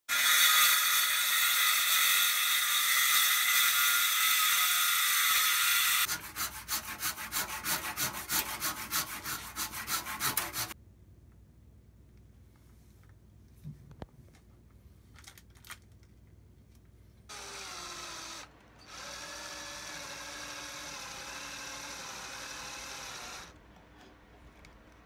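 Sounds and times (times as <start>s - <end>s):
circular saw cutting wood: 0.1s - 10.8s, 17.3s - 23.6s
handsaw cutting wood: 0.1s - 10.8s.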